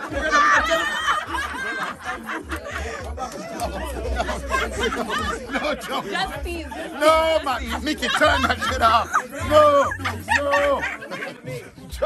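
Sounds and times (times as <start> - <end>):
people laughing and chattering: 0.0 - 12.0.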